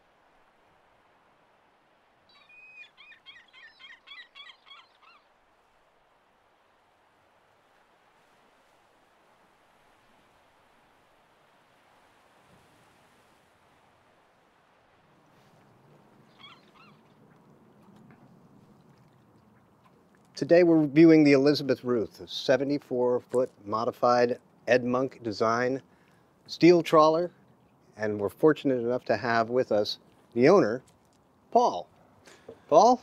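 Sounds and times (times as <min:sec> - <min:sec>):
small bird singing: 0:02.3 - 0:05.2, 0:16.3 - 0:17.1
bird calls: 0:02.3 - 0:05.3, 0:15.6 - 0:20.0
faint steady hush: 0:25.4 - 0:28.2.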